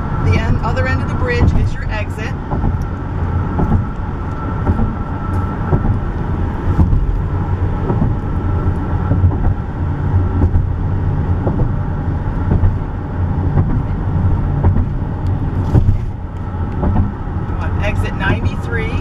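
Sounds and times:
car cabin road rumble: 0.0 - 19.0
faint steady whine: 0.0 - 19.0.

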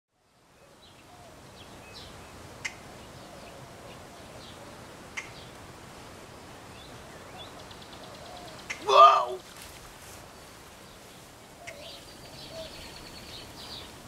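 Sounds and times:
outdoor background hiss: 0.1 - 14.0.

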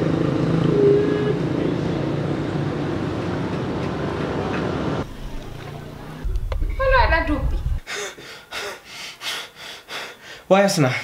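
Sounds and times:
low traffic rumble: 0.0 - 7.8
low hum: 5.0 - 7.8.

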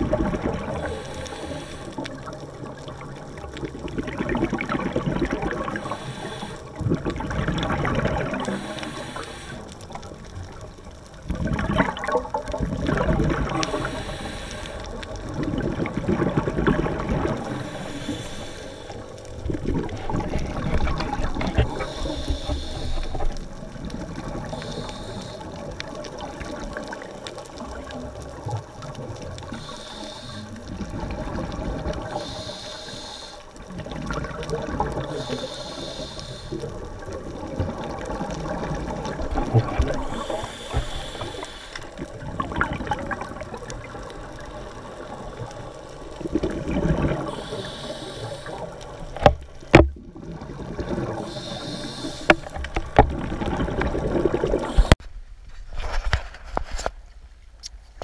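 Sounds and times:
bubbling of exhaled air: 0.0 - 55.0
regulator breathing hiss: 0.7 - 2.3, 5.8 - 6.8, 8.4 - 10.0, 13.5 - 15.1, 17.4 - 19.3, 21.6 - 23.4, 24.4 - 25.7, 29.5 - 30.8, 32.0 - 33.6, 35.0 - 36.8, 40.0 - 42.1, 47.2 - 49.0, 51.2 - 52.6, 54.6 - 55.0.

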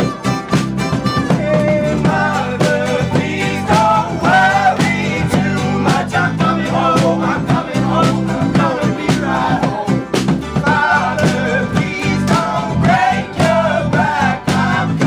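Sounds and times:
strummed acoustic guitar: 0.0 - 15.0
voices singing: 0.0 - 15.0.

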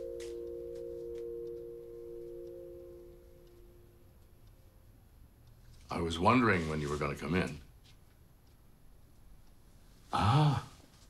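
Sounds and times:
sustained low film score chord: 0.0 - 5.2.

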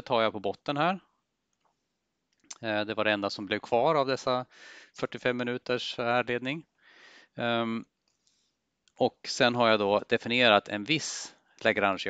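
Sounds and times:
man saying ehm: 2.5 - 4.4, 5.0 - 6.6, 7.4 - 7.8
man breathing faintly: 4.5 - 5.0, 6.8 - 7.4.

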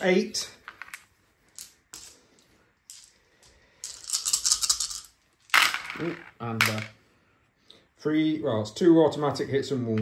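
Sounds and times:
dice rattling in hands: 3.8 - 6.9.

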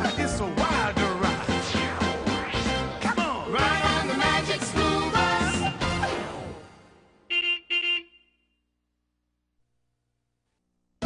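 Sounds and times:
theme music: 0.0 - 7.3
bus horn beeps: 7.3 - 8.6.

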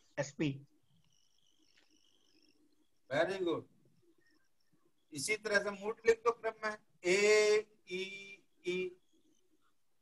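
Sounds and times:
faint high-pitched steady tone: 0.0 - 10.0.

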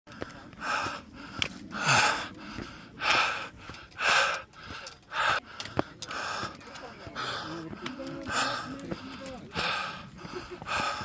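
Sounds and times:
person breathing heavily: 0.1 - 11.0.

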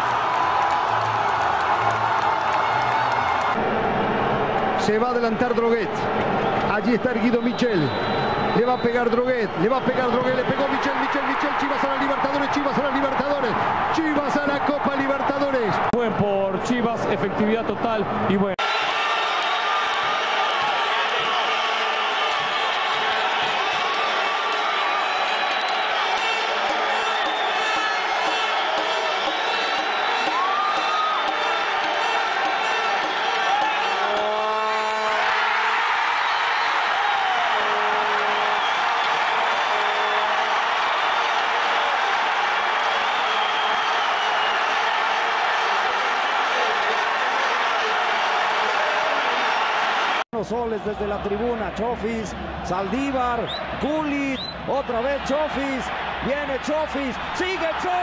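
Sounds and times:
stadium crowd cheering: 0.0 - 58.0.

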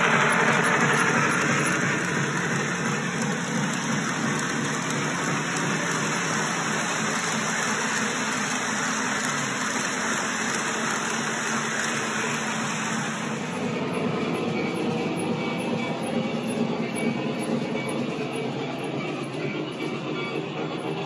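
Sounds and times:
model train cars rushing past: 0.0 - 21.0.

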